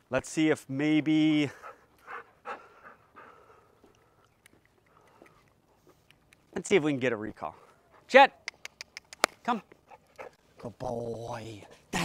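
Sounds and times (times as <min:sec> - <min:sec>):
dog panting faintly: 0:01.5 - 0:06.4, 0:07.4 - 0:08.4, 0:09.7 - 0:10.4.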